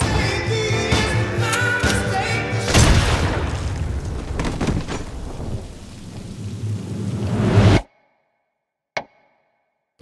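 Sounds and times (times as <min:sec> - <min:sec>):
heavy rain: 0:03.0 - 0:07.8
thunder rumbling: 0:03.0 - 0:07.8.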